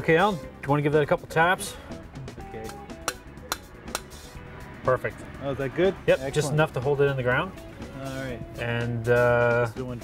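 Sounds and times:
hammer striking copper pipe: 2.7s - 4.2s.

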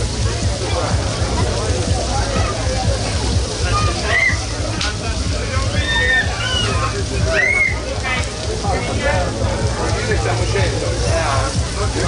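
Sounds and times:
meat sizzling on a grill: 0.0s - 12.0s
people talking: 0.0s - 12.0s.

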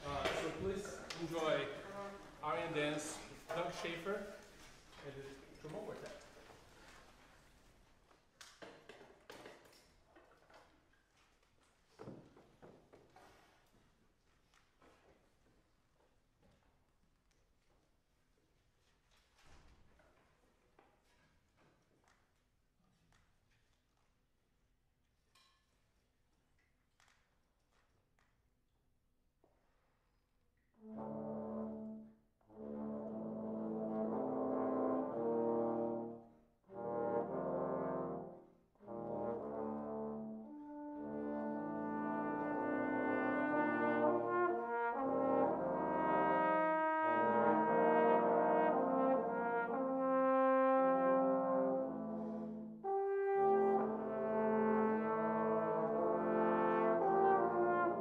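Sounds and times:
trombone ensemble playing: 30.8s - 58.0s.

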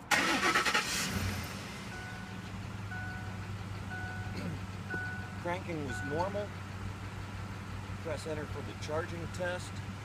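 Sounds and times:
truck engine cranking: 0.0s - 9.0s
truck engine idling: 0.1s - 10.0s.

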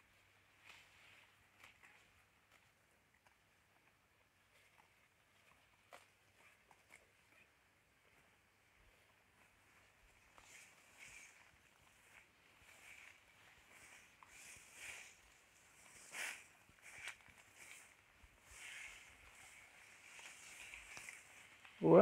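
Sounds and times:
grass rustling: 0.0s - 22.0s
leaves brushing and ripping: 8.9s - 22.0s.

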